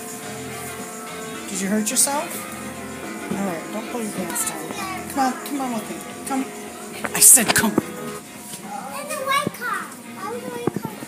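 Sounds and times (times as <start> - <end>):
young children chattering: 1.4 - 11.0.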